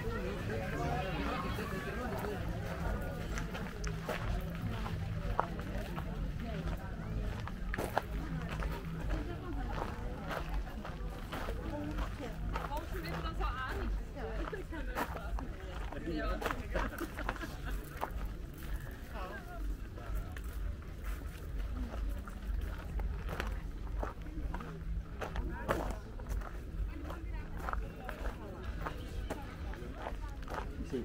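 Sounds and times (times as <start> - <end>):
chatter of passing voices: 0.0 - 31.0.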